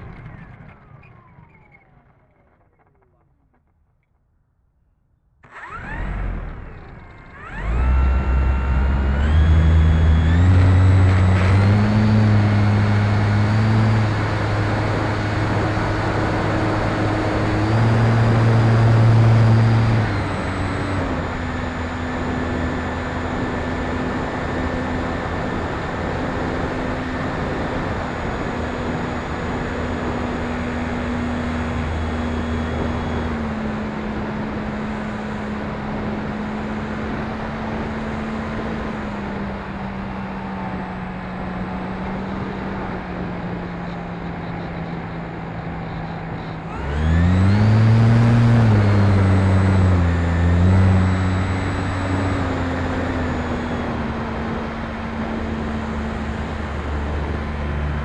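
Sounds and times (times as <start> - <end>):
rc plane electric motor whine: 5.5 - 36.7, 46.0 - 56.8.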